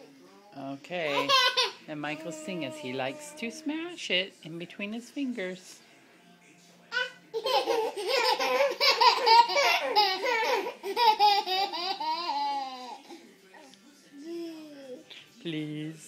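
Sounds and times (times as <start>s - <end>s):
baby laughing: 1.1s - 1.8s, 6.9s - 13.2s.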